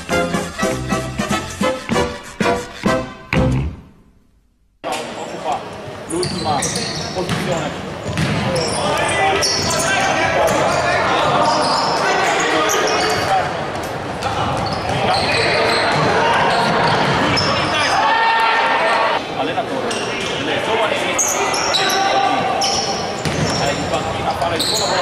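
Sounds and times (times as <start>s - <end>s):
shoes squeaking: 6.1s - 13.4s, 21.2s - 25.0s
ball bouncing on wooden court: 7.3s - 7.5s, 8.1s - 8.5s.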